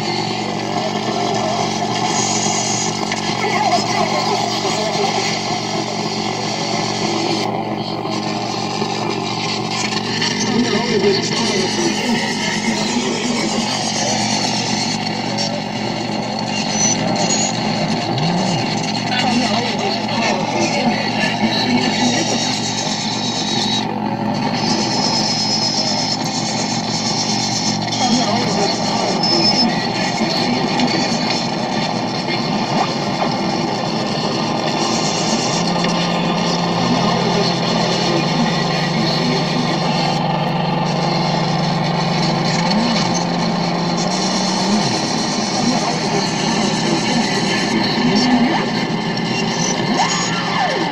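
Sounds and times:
distorted noise music: 0.0 - 50.9
low hum: 0.0 - 50.9
steady low drone: 0.0 - 50.9.

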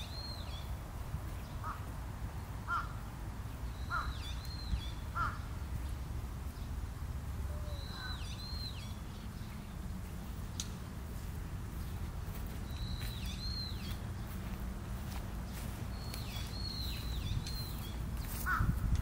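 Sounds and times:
short low bird calls: 3.7 - 5.6, 7.4 - 9.0, 15.9 - 18.9.

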